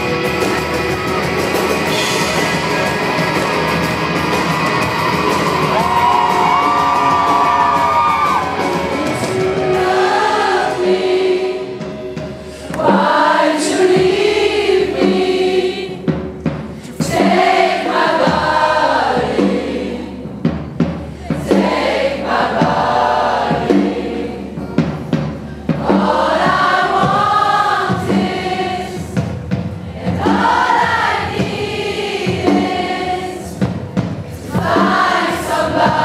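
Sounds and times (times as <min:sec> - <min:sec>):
pop-rock band playing: 0:00.0 - 0:36.0
voices singing held notes: 0:06.2 - 0:16.2, 0:16.8 - 0:20.5, 0:21.2 - 0:24.6, 0:25.7 - 0:36.0
voices singing held note: 0:06.6 - 0:11.9.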